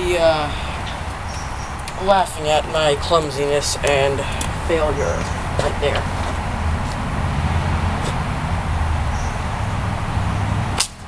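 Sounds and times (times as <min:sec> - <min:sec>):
arrow striking target: 0:10.8 - 0:11.0.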